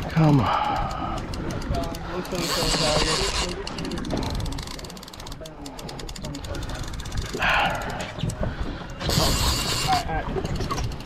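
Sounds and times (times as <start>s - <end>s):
low rumble of wind and water: 0.0s - 11.0s
fishing reel clicking rapidly: 0.5s - 8.1s, 9.1s - 11.0s.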